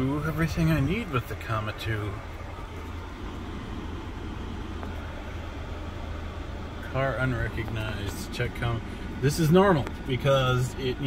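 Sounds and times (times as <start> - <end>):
car engine idling: 0.0 - 11.0
climate-control fan blowing: 0.0 - 11.0.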